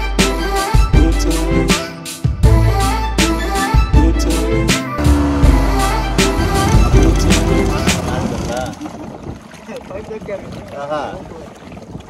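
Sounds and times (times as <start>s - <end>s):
music with a beat: 0.0s - 8.0s
outboard motor running: 5.0s - 12.0s
water rushing past hull: 5.2s - 12.0s.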